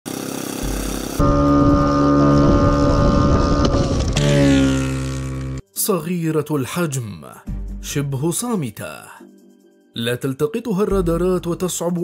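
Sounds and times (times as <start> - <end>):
small drone engine buzzing: 0.1 - 5.6.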